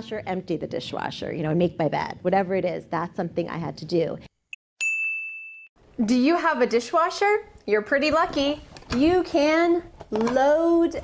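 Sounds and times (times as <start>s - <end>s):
bright bell-like ding: 4.8s - 5.7s.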